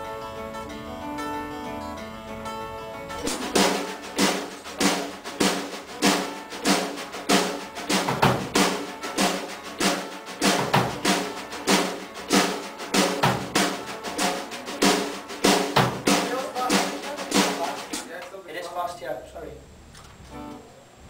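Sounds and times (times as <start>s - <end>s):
drum kit steady beat: 3.2s - 18.3s.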